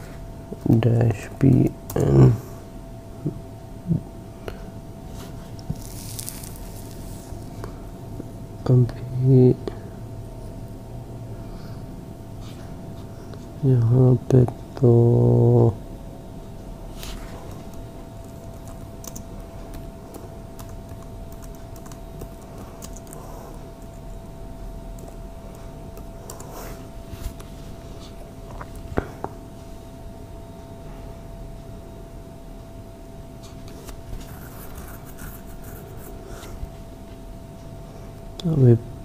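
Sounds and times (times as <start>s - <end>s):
faint steady hum: 0.0s - 39.0s
computer mouse rubbing and clicking: 5.6s - 7.4s, 25.0s - 28.9s, 33.7s - 36.6s
keyboard typing: 17.4s - 24.2s, 24.9s - 26.6s.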